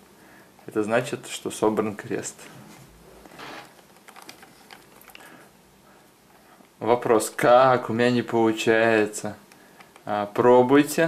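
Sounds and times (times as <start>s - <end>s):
puzzle cube clicking: 3.8s - 5.2s.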